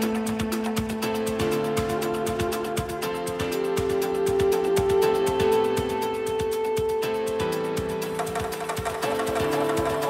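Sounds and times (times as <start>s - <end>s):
crisp high percussion: 8.0s - 10.0s.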